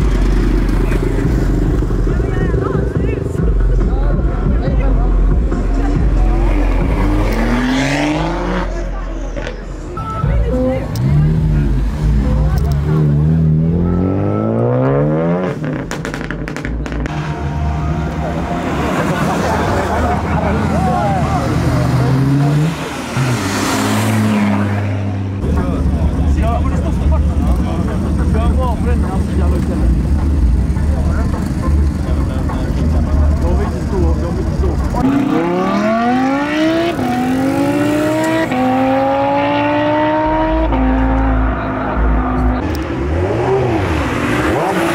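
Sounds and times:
car engines accelerating: 0.0 - 44.9
deep engine rumble: 0.0 - 44.9.

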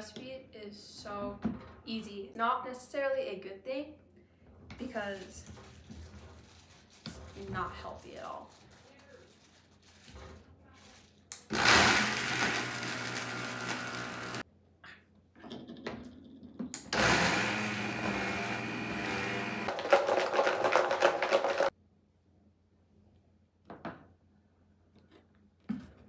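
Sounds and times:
blender grinding cookies: 11.5 - 14.4, 16.9 - 21.7.

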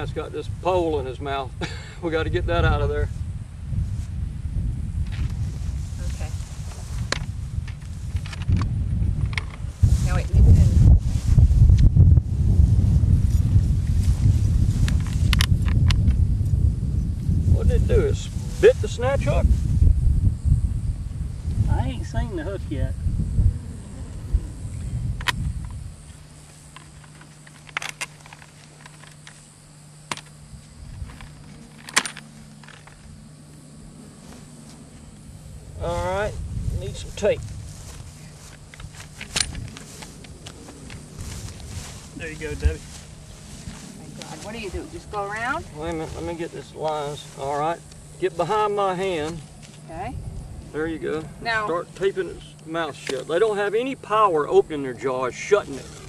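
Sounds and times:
wind buffeting microphone: 0.0 - 27.0, 30.4 - 53.0
steady low hum: 0.0 - 56.0
handling clicks and rustles: 25.2 - 33.6, 37.2 - 48.2.

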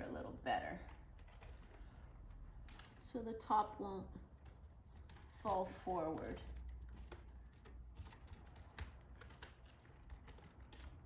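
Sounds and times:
small clicks and crackles of wicker: 0.8 - 11.0.

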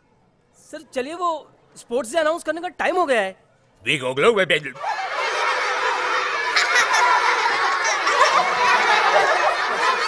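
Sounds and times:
children laughing: 4.8 - 10.0.

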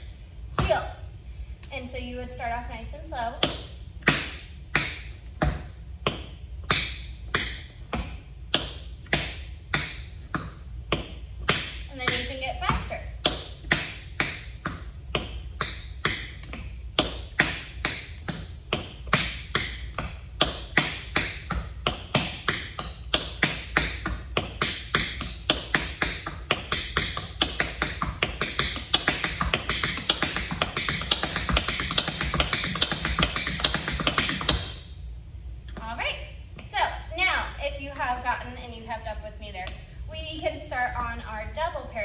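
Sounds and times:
tap shoes on wooden floor: 3.4 - 34.8.

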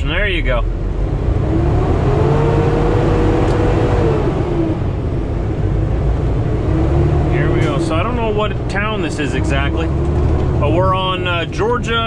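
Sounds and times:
diesel truck engine rumbling: 0.0 - 12.0
engine whine: 0.0 - 12.0.

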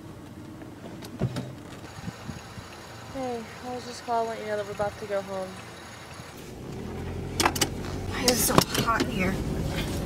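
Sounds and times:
car engine hum inside cabin: 0.0 - 10.0.

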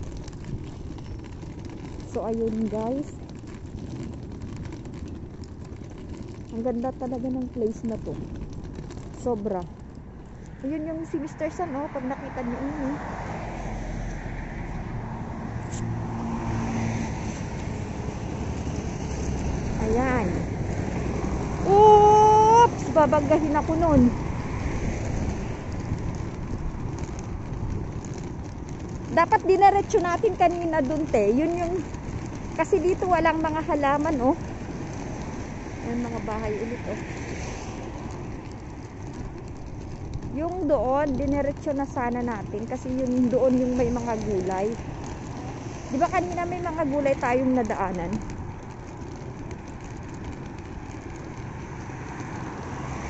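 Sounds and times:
road traffic hum: 0.0 - 53.0
cars driving past: 9.8 - 41.8, 42.4 - 53.0.

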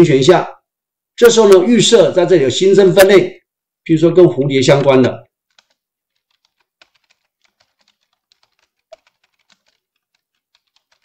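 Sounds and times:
faint typing on keyboard: 5.3 - 11.0.

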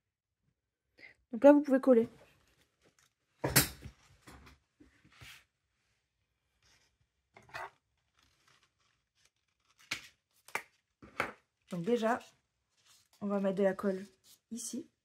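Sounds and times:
paper rustling: 6.4 - 11.0, 11.6 - 14.6.

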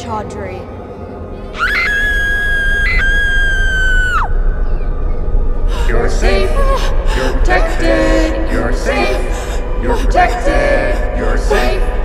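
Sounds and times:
low rumble: 2.5 - 12.0.

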